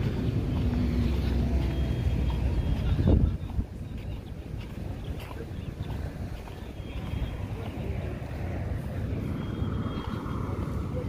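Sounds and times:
road traffic rumble: 0:00.0 - 0:11.0
wind on microphone: 0:00.0 - 0:11.0.

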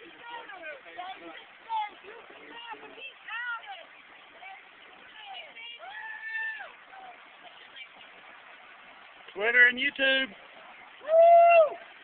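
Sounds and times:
faint street background hiss: 0:00.0 - 0:12.0.

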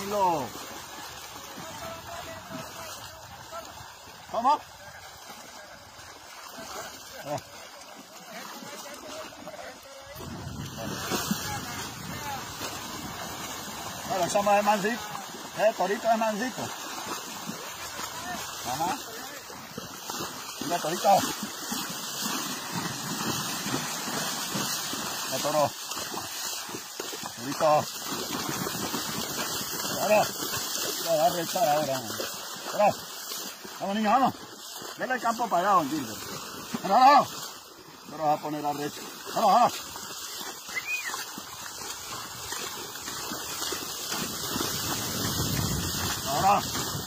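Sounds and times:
floodwater rushing: 0:00.0 - 0:47.0
water splashing and sloshing: 0:00.0 - 0:47.0.

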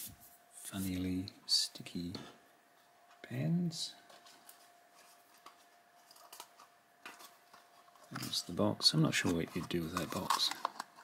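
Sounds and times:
faint steady hum: 0:00.0 - 0:11.0
packaging clicks: 0:09.2 - 0:11.0.

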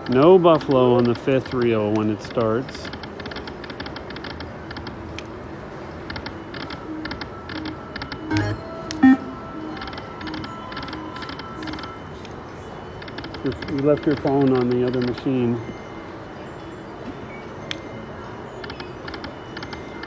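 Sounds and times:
casino background noise: 0:00.0 - 0:20.0
rapid electronic ticking: 0:06.0 - 0:12.0
soft electronic tones: 0:06.2 - 0:14.3.

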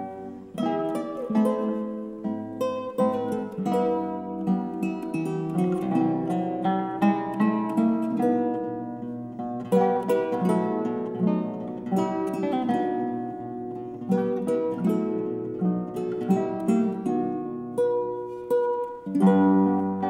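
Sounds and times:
two guitars playing a duet: 0:00.0 - 0:20.0.

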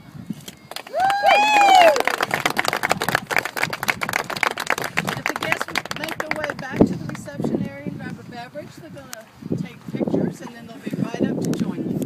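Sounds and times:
people applauding: 0:00.7 - 0:07.3.

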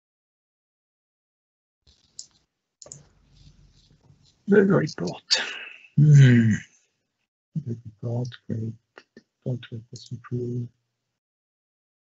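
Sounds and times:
computer mouse clicking: 0:01.9 - 0:03.5.

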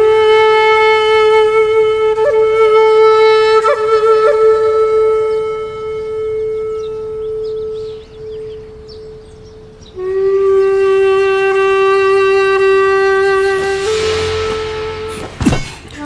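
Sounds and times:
wind instrument long reedy notes: 0:00.0 - 0:16.0.

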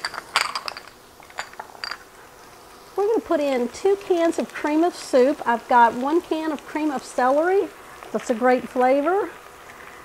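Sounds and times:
glass jars clinking: 0:00.0 - 0:02.1.

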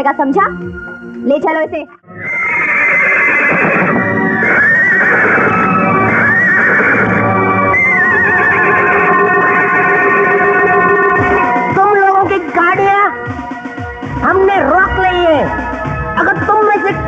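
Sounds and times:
film background music: 0:00.0 - 0:17.0
horse whinnying: 0:02.1 - 0:11.7.

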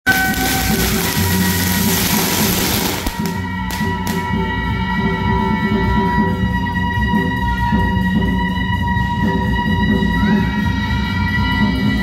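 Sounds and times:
firecrackers crackling: 0:00.0 - 0:04.3.

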